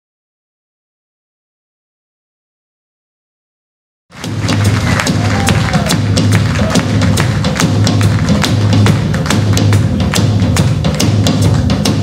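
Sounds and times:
steady drum beat: 0:04.2 - 0:12.0.

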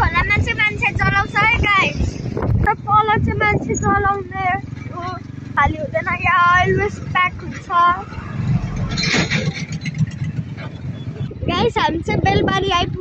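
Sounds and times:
vehicle engine and road rumble: 0:00.0 - 0:13.0.

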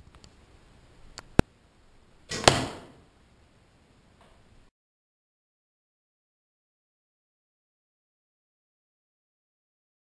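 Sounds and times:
arrow rushing: 0:02.3 - 0:03.0
arrow smacking cardboard: 0:02.3 - 0:03.0.

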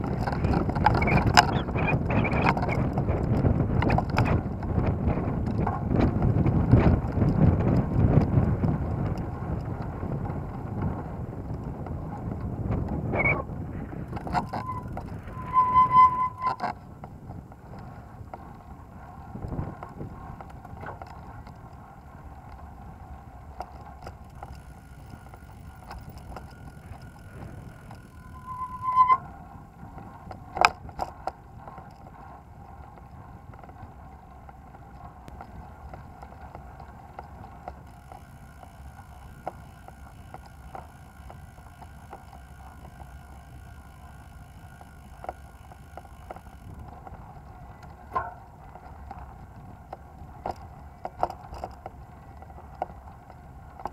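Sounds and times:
wheels rolling rumble: 0:00.0 - 0:53.9
wind buffeting microphone: 0:00.0 - 0:53.9
faint steady hum: 0:17.6 - 0:53.9.

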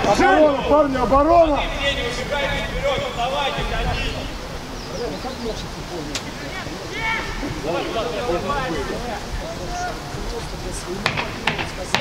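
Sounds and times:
distant players shouting: 0:00.0 - 0:12.0.

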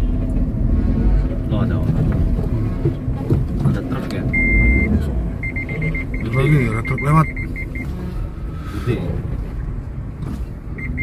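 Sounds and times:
vehicle engine and road rumble: 0:00.0 - 0:11.0
high electronic beeps: 0:04.3 - 0:07.9, 0:10.8 - 0:11.0.

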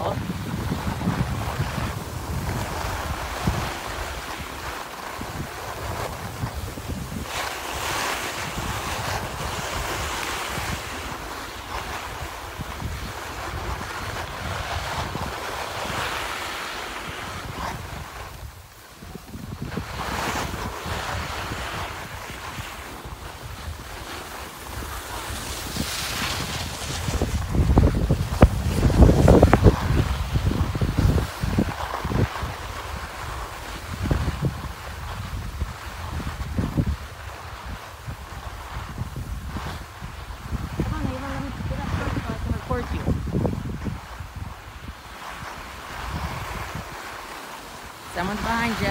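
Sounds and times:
skis scraping over snow: 0:00.0 - 0:48.9
wind buffeting microphone: 0:00.0 - 0:48.9.

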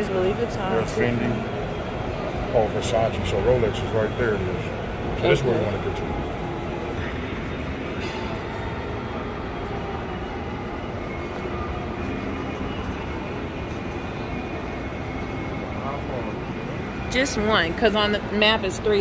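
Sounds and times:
distant indistinct voices: 0:00.0 - 0:19.0.

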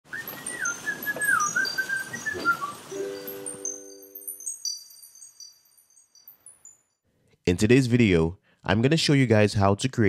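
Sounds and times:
whistled tune: 0:00.1 - 0:05.4
held chord with chiming tones: 0:02.8 - 0:06.4.

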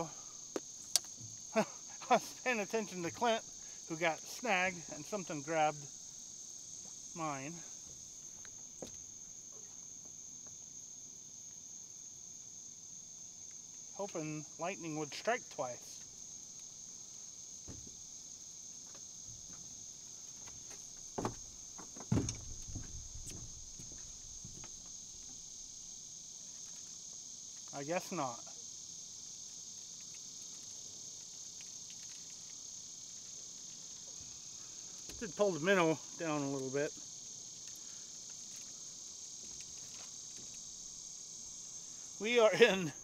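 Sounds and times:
high-pitched insect chorus: 0:00.0 - 0:43.0
dull knocks: 0:17.6 - 0:18.0, 0:21.0 - 0:24.8
faint clicks: 0:29.9 - 0:33.7.

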